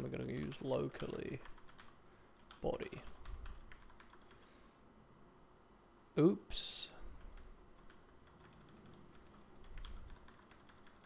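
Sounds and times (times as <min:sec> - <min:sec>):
faint keyboard keystrokes: 0:07.2 - 0:11.0.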